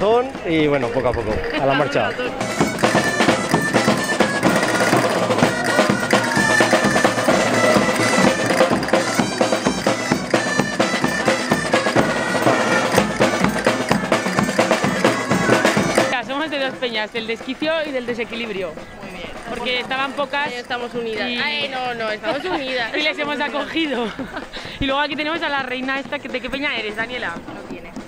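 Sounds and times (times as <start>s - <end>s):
people talking: 0.0s - 8.7s, 13.8s - 28.0s
reedy folk pipes: 0.0s - 24.8s
snare and bass drums: 2.4s - 21.3s.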